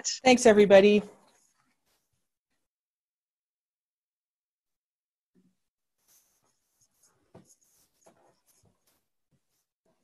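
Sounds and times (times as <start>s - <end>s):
faint scratching: 6.0s - 10.0s.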